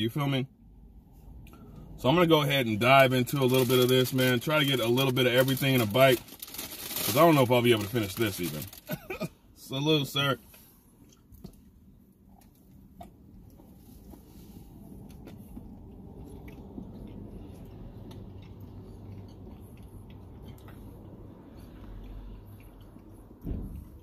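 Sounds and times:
people chewing soft cookie: 0:10.6 - 0:24.0
short low thump: 0:23.4 - 0:24.0.

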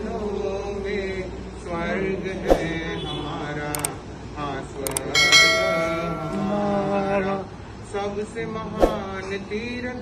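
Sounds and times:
bell ringing: 0:04.9 - 0:07.0.

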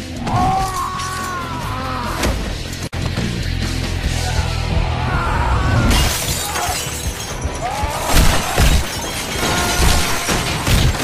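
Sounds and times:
film music: 0:00.0 - 0:11.0
shattering debris: 0:05.9 - 0:11.0.

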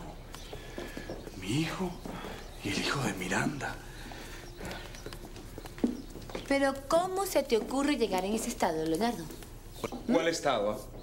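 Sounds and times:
footsteps on hard floor: 0:04.6 - 0:10.1.

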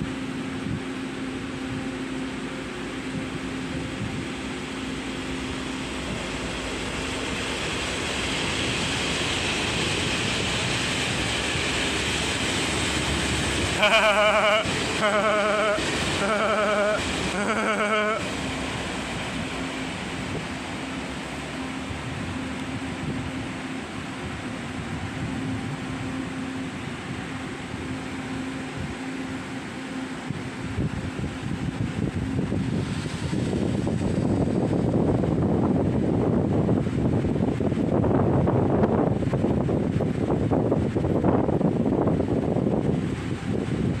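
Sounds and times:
railway platform hum: 0:00.0 - 0:44.0.

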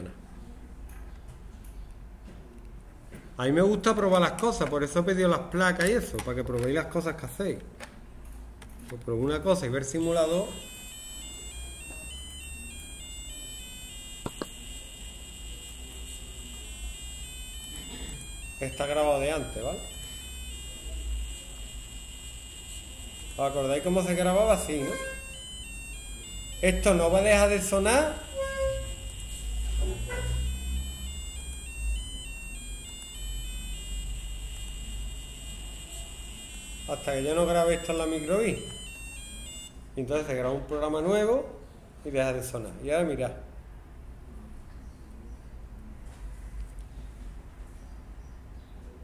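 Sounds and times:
short electronic beeps: 0:10.0 - 0:39.8
sharp clicks: 0:12.1 - 0:14.7.

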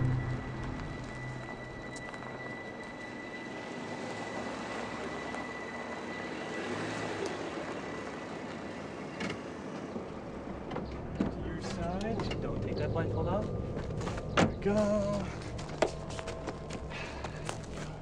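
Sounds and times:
car engine hum: 0:00.0 - 0:01.8.

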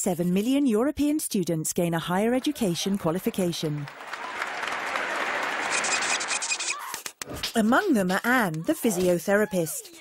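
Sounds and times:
voices: 0:01.8 - 0:03.9, 0:07.6 - 0:10.0
crowd applause: 0:02.4 - 0:06.4.

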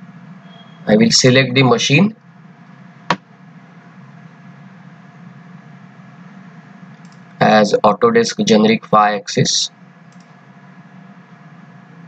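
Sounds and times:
low hum and hiss: 0:00.0 - 0:12.0
computer mouse click: 0:07.0 - 0:07.3, 0:10.1 - 0:10.4.

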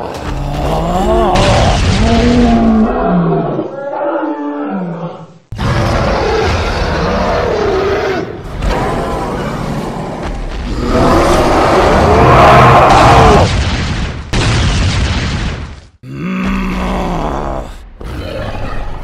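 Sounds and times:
big cat roaring and growling: 0:00.0 - 0:13.5, 0:16.0 - 0:18.4.

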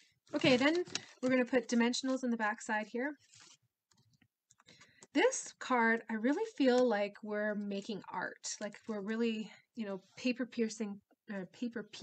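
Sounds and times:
paper rustling: 0:00.3 - 0:02.2, 0:03.2 - 0:05.1.

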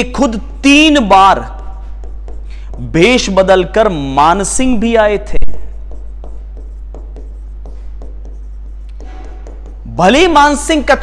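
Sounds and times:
stylus tapping and scraping on screen: 0:00.0 - 0:03.9, 0:05.0 - 0:10.5
steady low hum: 0:00.0 - 0:11.0.

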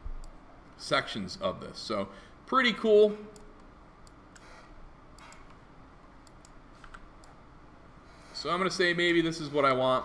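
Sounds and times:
low room noise: 0:00.0 - 0:10.0
mouse and keyboard clicks: 0:05.2 - 0:05.6, 0:06.2 - 0:07.4.

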